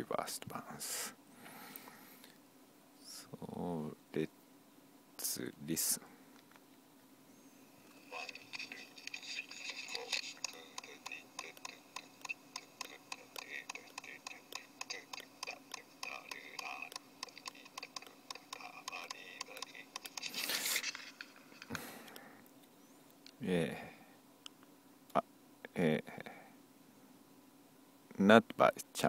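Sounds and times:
person singing: 0:08.1 - 0:20.9
rhythmic tapping: 0:08.1 - 0:21.7
breathy noise burst: 0:20.2 - 0:22.4.

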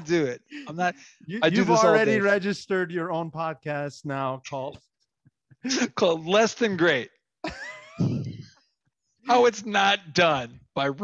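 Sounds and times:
man laughing: 0:07.4 - 0:08.3.

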